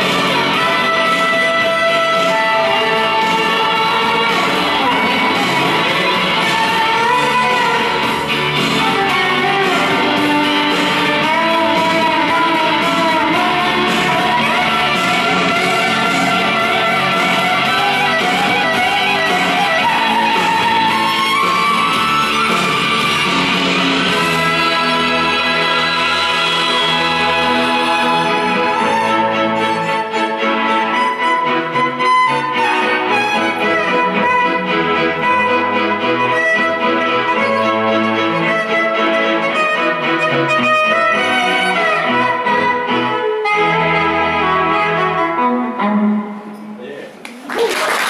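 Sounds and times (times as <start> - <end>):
violin melody with vibrato: 0.0 - 46.7
strummed guitar: 0.0 - 46.8
orchestral accompaniment: 0.0 - 46.9.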